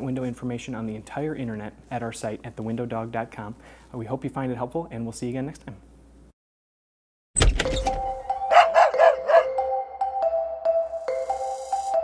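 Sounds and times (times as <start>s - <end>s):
logo jingle: 7.6s - 12.0s
dog barking: 8.5s - 9.6s.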